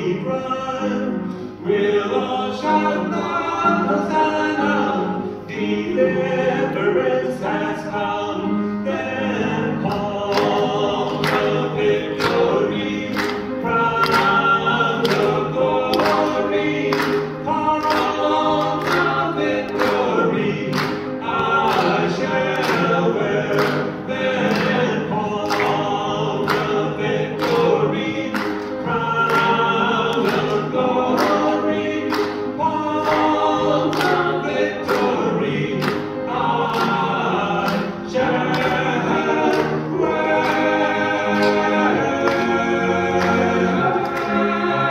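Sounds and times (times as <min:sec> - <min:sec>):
male trio singing gospel: 0:00.0 - 0:44.9.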